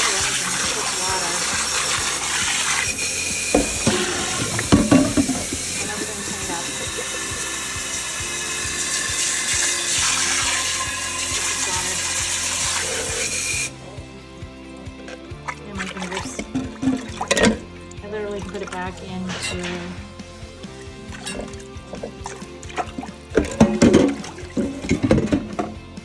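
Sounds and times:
water swished in pan: 0.0 - 13.7
faucet running into pan: 0.0 - 13.8, 14.8 - 25.8.

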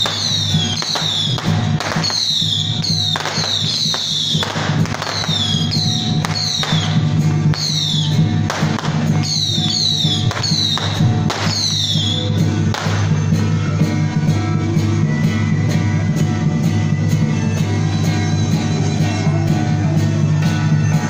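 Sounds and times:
gongs and cymbals struck: 0.0 - 21.0.

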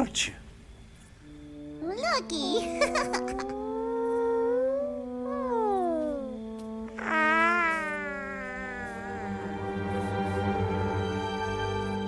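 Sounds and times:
small creature warbling call: 1.8 - 9.7.

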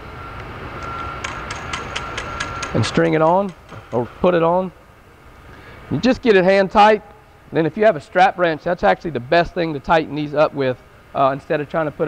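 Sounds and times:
regular ticks: 0.4 - 4.2.

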